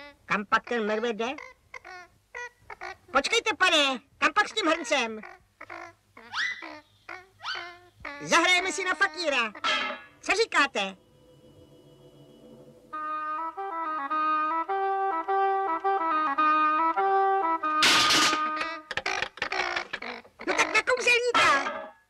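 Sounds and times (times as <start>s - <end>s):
cartoon character vocal sounds: 0.0s - 3.5s, 4.4s - 9.9s, 18.6s - 21.4s
reedy wind instrument tune: 8.2s - 18.9s.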